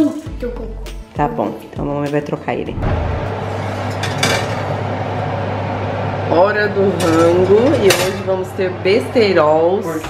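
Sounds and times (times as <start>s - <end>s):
oven fan humming: 1.3s - 10.0s.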